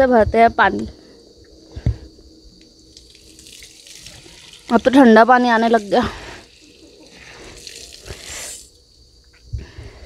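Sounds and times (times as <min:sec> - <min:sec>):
water running into bottle: 0:02.9 - 0:08.8.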